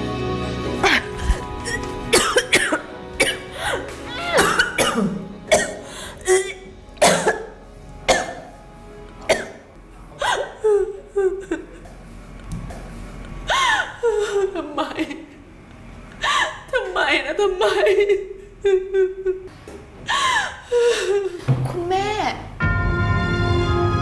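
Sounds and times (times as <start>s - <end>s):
background music score: 0.0s - 11.2s, 22.6s - 24.0s
woman sobbing and wailing: 3.5s - 5.2s, 10.2s - 11.8s, 13.5s - 15.3s, 16.2s - 16.8s, 17.4s - 19.5s, 20.1s - 21.4s.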